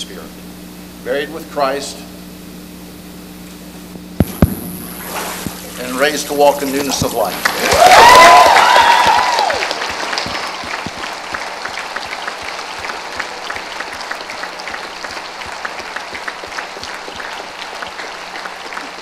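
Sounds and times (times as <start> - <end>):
congregation clapping: 6.5 - 19.0.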